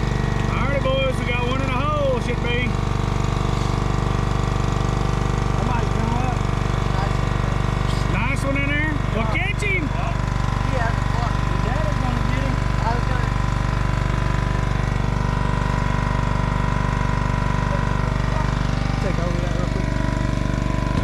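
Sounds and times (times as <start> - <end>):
boat motor idling: 0.0 - 21.0.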